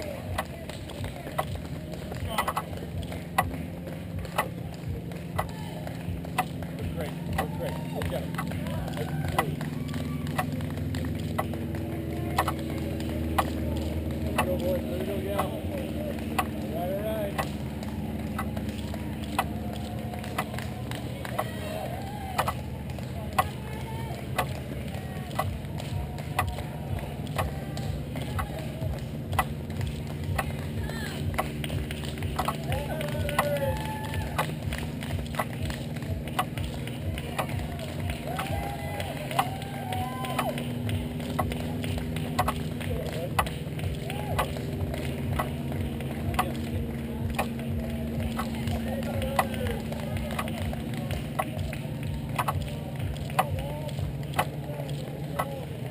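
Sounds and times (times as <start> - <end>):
footfalls slapping on asphalt: 0.0 - 55.9
spectators clapping: 0.0 - 55.9
shouts and cheers: 5.2 - 6.2, 6.8 - 11.0, 17.9 - 29.0, 30.7 - 41.7.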